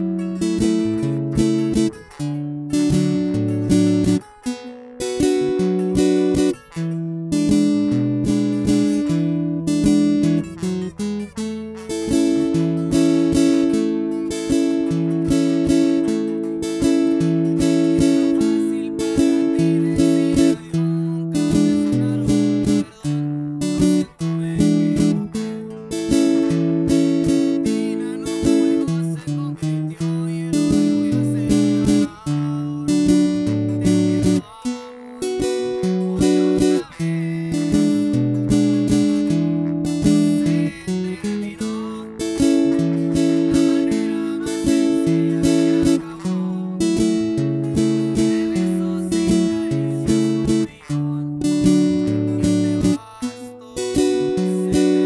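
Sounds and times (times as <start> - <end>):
acoustic guitar strumming: 0.0 - 55.0.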